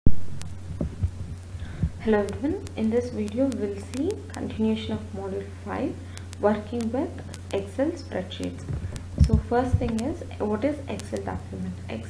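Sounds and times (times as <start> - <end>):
soft low thuds: 0.1 - 2.7, 8.6 - 10.1
steady low hum: 0.1 - 12.0.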